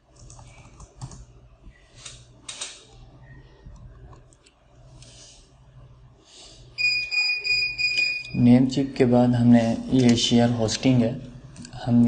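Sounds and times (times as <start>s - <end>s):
high-pitched electronic beep: 6.8s - 8.4s.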